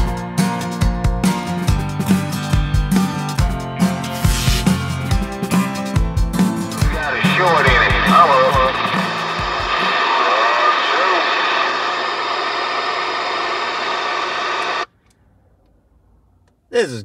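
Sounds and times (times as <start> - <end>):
music track with a beat: 0.0 - 9.8
garbled radio voice: 6.8 - 12.1, 16.7 - 17.0
heavy radio static: 6.8 - 14.9.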